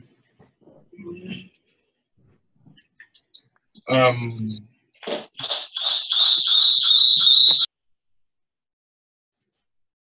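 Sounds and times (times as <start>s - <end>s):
rhythmic noise pulses: 5.1s - 7.7s.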